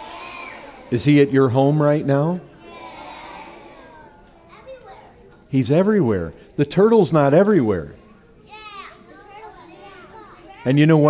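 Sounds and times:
young children's voices: 0:00.0 - 0:05.5, 0:08.0 - 0:11.0.

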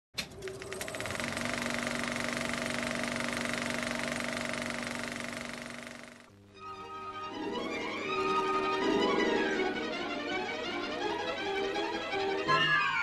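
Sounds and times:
machine rattling over hum: 0:00.2 - 0:06.3.

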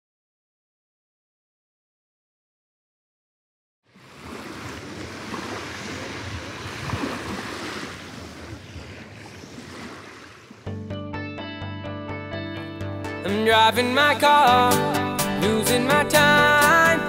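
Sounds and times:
sea waves washing onto shore: 0:03.9 - 0:10.7
music: 0:10.7 - 0:17.0.

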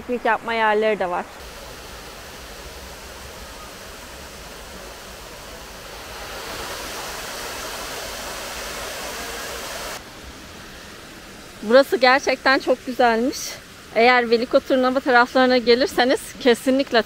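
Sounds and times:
waterfall rushing into pool: 0:00.0 - 0:17.0.

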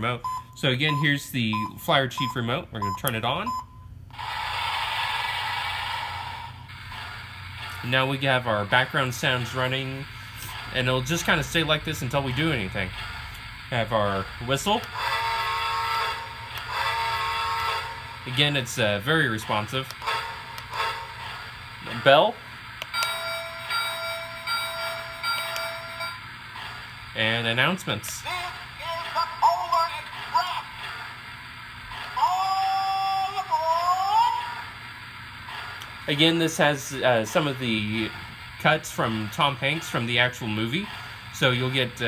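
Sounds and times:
toy train steam whistle: 0:14.8 - 0:18.7, 0:19.3 - 0:22.3, 0:22.9 - 0:26.2, 0:32.0 - 0:34.8
recorded conductor announcement: 0:27.2 - 0:30.7.

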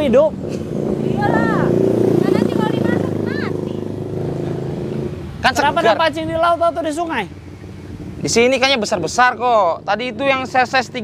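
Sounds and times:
vehicle engine passing: 0:00.0 - 0:11.0.

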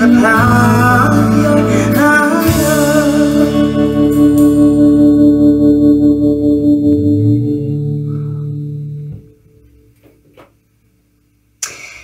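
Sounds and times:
guitar chord ringing: 0:00.0 - 0:10.0.

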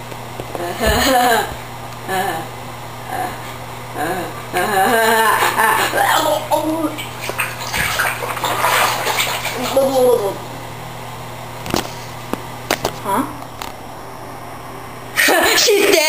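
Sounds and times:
water splashing in a bathtub: 0:04.6 - 0:10.4.

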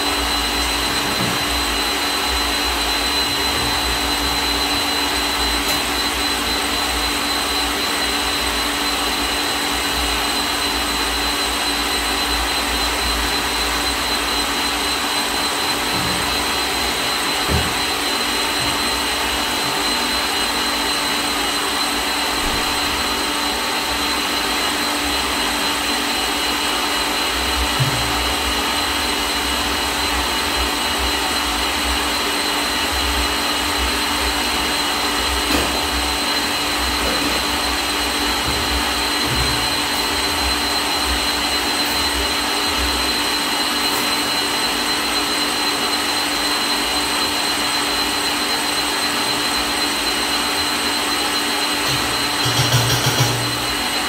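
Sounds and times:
electric stand mixer running: 0:00.0 - 0:54.0.

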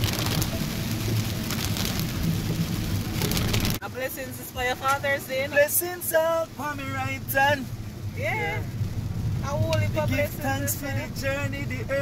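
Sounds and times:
car rumbling on wet road: 0:00.0 - 0:12.0
heavy rain on car windscreen: 0:00.0 - 0:12.0.

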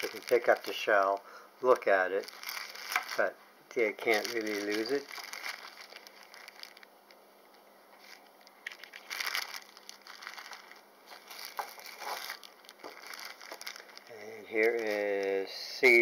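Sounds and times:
plastic bags crinkling: 0:00.0 - 0:16.0.

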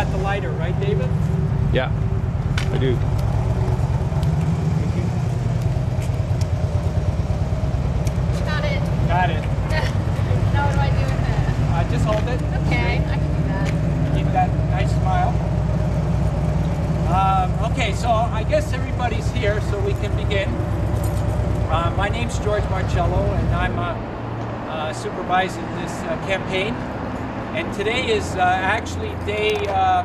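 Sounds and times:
vehicle engine idling: 0:00.0 - 0:30.0.

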